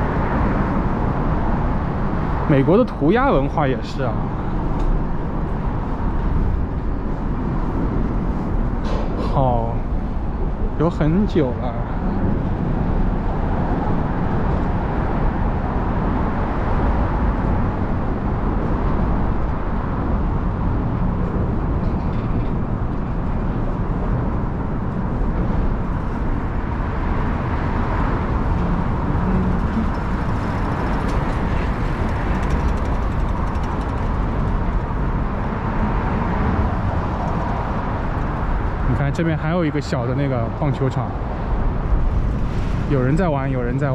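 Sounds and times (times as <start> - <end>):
traffic rumble on bridge: 0.0 - 43.9.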